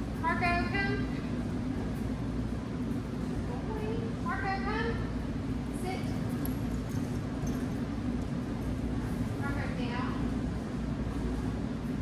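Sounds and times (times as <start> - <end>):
steady low hum: 0.0 - 12.0
woman speaking: 0.2 - 1.2, 3.5 - 5.1, 5.8 - 6.2, 9.4 - 10.3.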